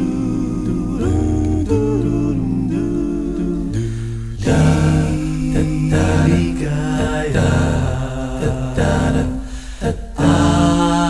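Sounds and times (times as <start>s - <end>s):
a cappella layered male voices: 0.0s - 11.0s
low sung bass line: 0.0s - 11.0s.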